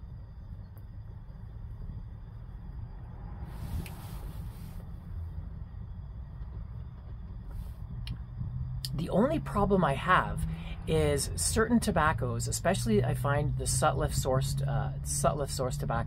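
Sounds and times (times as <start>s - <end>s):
steady low rumble: 0.0s - 16.0s
breathy hiss of pipe puffing: 3.4s - 5.0s.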